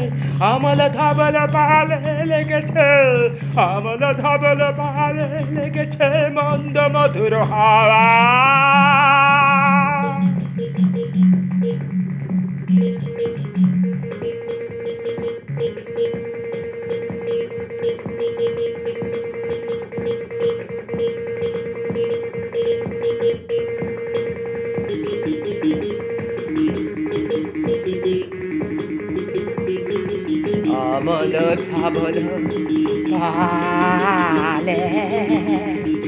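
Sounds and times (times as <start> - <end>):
electronic instrumental music: 0.0 - 36.0.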